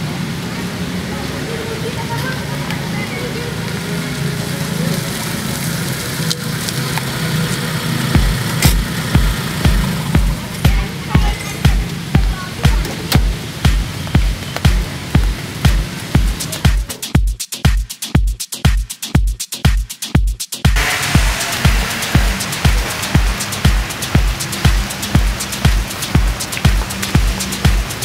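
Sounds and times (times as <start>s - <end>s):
electronic dance music: 8.1s - 28.0s
kick-drum beat: 8.2s - 28.0s.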